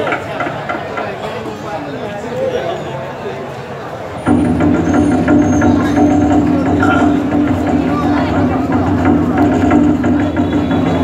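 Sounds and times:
large drum fast roll: 4.1 - 11.0.

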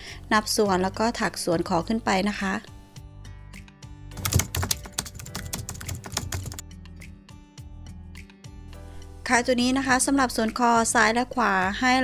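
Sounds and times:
background music: 0.0 - 12.0
keyboard typing clicks: 4.2 - 6.6.

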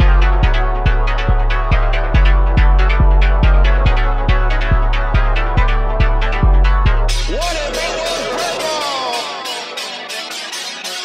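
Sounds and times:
sustained bass tone: 0.0 - 9.1
crisp high percussion: 0.0 - 11.0.

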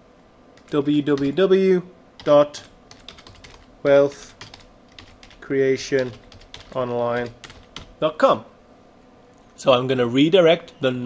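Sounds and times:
person speaking: 0.6 - 8.5.

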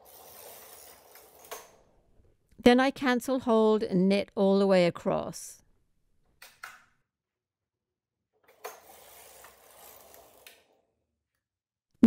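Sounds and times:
knitting machine carriage sliding: 0.0 - 1.8, 8.5 - 10.8.

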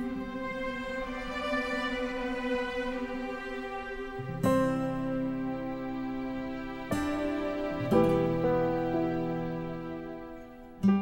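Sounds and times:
strings holding sustained chords: 0.0 - 11.0.

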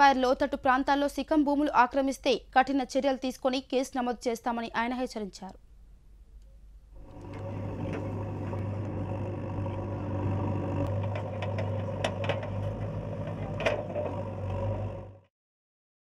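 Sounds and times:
diesel engine running: 7.0 - 15.3
bucket clanking: 10.9 - 14.6.

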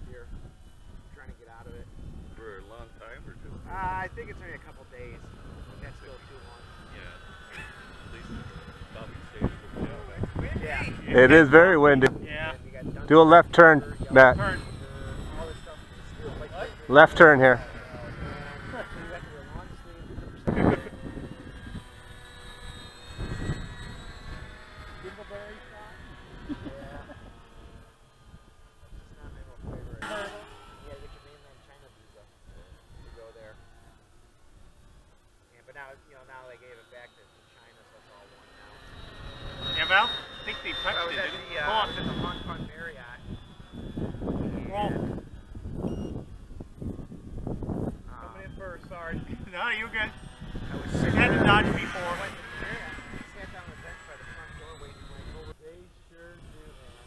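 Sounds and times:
wind buffeting microphone: 0.0 - 31.3, 40.8 - 55.6
model plane motor whine: 0.0 - 57.0.

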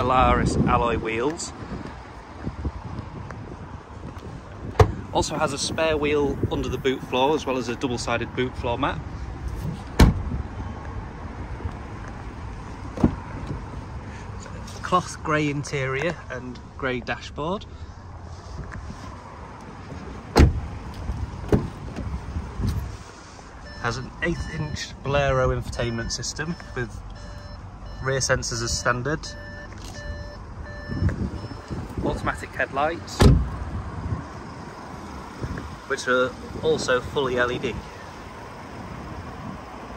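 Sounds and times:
car tailgate shutting: 9.9 - 10.2, 20.3 - 20.6, 33.2 - 33.6
parking sensor beeping: 23.6 - 32.0.

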